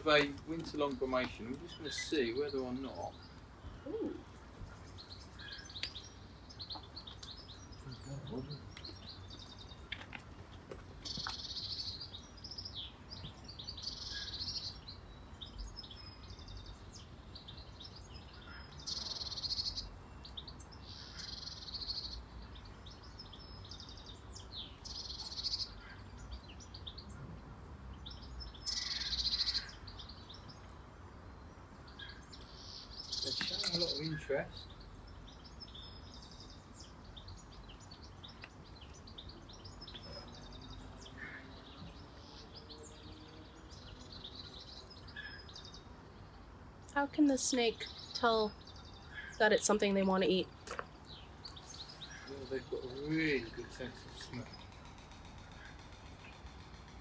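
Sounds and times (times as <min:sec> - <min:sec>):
small birds singing: 0:00.0 - 0:57.0.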